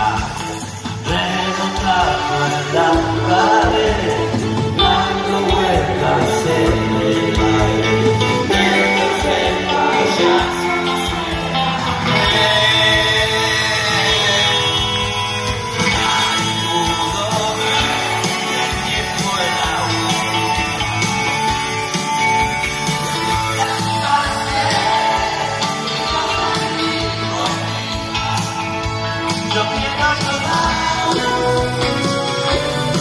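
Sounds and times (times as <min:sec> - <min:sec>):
electric guitar: 0:00.0 - 0:33.0
keyboards: 0:00.0 - 0:33.0
live rock band instrumental: 0:00.0 - 0:33.0.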